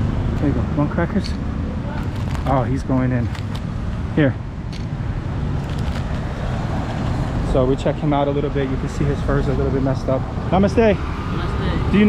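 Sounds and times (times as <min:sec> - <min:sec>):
road noise: 0:00.0 - 0:12.0
vehicle engines running: 0:00.0 - 0:12.0.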